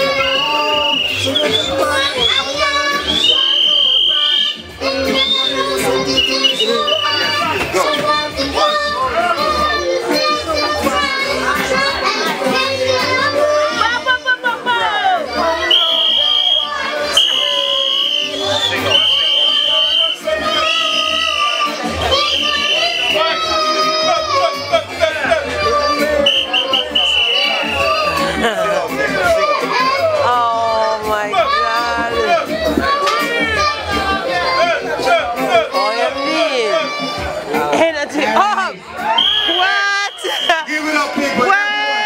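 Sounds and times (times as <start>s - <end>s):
reggae riddim with pulsing bass: 15.2s - 36.2s
dancehall backing track: 22.0s - 42.0s.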